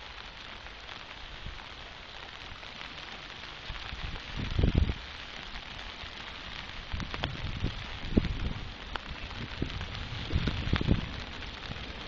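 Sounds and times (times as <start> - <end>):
rain hissing: 0.0 - 12.0
low rumbling buffets: 3.7 - 12.0.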